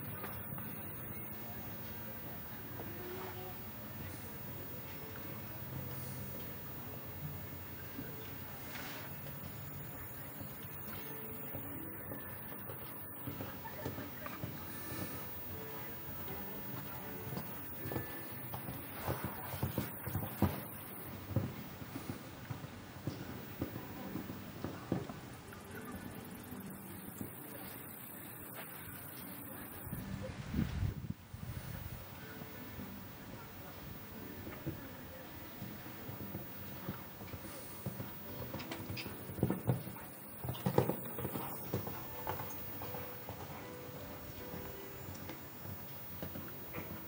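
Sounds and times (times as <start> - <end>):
horse hoofbeats on sand: 8.7 - 30.1, 34.1 - 47.0.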